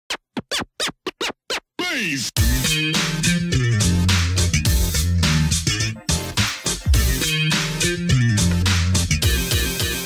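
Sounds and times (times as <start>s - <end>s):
turntable record scratching: 0.1s - 10.0s.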